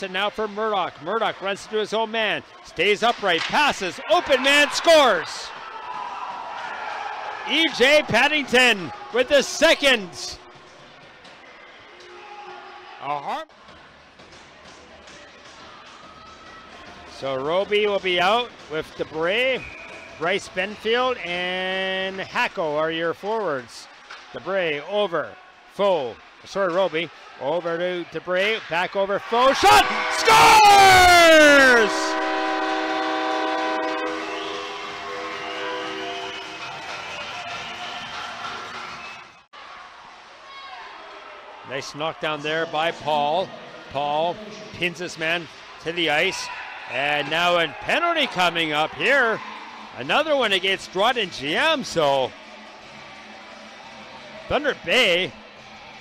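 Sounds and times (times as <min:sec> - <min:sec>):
crowd noise: 0:00.0 - 0:21.3, 0:23.2 - 0:56.0
arena goal horn chord: 0:29.5 - 0:36.6.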